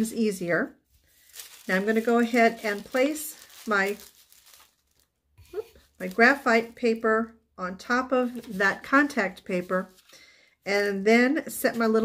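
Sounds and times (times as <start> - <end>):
paper sheets rustling: 1.0 - 6.7, 8.2 - 11.0.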